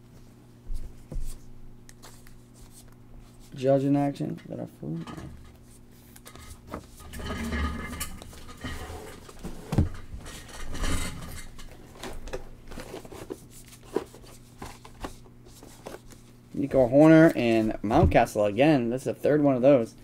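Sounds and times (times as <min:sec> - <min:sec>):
cards sliding and rustling: 0:01.2 - 0:03.5, 0:12.7 - 0:16.4.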